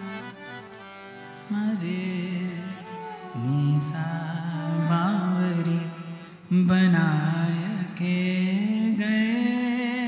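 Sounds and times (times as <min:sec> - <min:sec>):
man singing wordless vocal line: 0:01.4 - 0:10.0.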